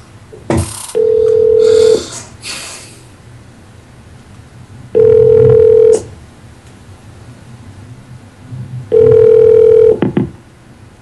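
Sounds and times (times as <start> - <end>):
ringback tone: 1.0 - 2.0, 5.0 - 6.1, 8.9 - 10.0
telephone line noise: 1.0 - 2.0, 5.0 - 6.1, 8.9 - 10.2.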